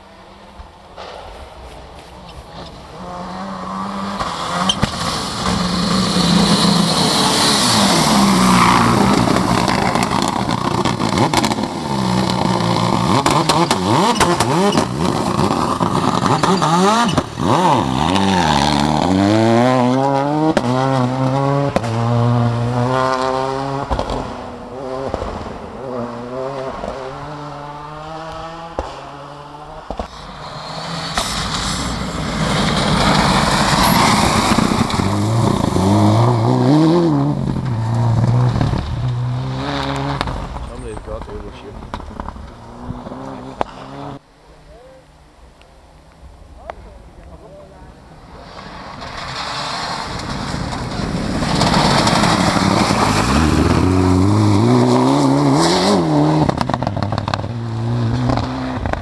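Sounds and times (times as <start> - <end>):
tyres on gravel: 0.1 - 45.0, 46.2 - 59.0
car engine revving hard: 2.8 - 40.6, 49.3 - 59.0.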